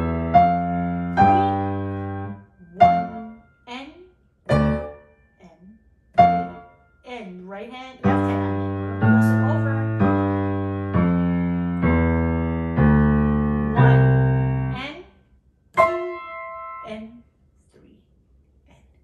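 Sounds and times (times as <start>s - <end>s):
piano chords ringing: 0.0s - 5.4s, 6.1s - 7.2s, 8.0s - 14.9s, 15.7s - 17.2s.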